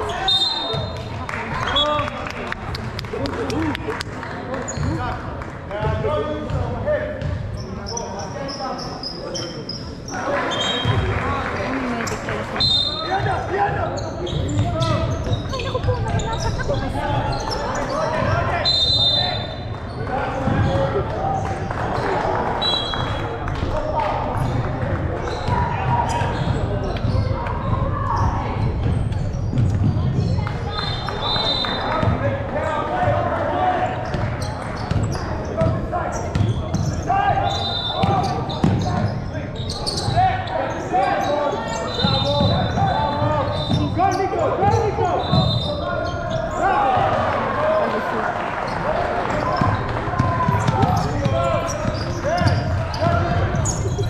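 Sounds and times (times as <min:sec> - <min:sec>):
players shouting and chatting: 0:00.0 - 0:54.0
shoe squeaks: 0:07.6 - 0:10.9, 0:12.1 - 0:21.0, 0:25.3 - 0:27.4, 0:34.0 - 0:47.0, 0:49.3 - 0:54.0
basketballs bouncing on wooden floor: 0:20.4 - 0:21.0, 0:24.4 - 0:30.5, 0:38.0 - 0:39.2, 0:49.3 - 0:54.0.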